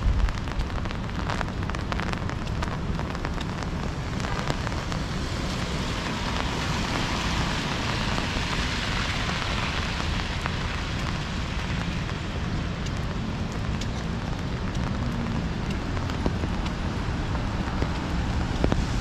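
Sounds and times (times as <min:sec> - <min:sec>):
low rumble: 0:00.0 - 0:19.0
rain on an umbrella: 0:00.0 - 0:19.0
tyres hissing on wet street: 0:00.0 - 0:19.0.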